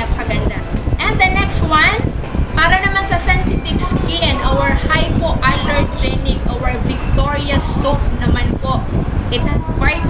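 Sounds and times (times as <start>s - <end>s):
steady low rumble: 0.0s - 10.0s
woman speaking: 0.0s - 10.0s.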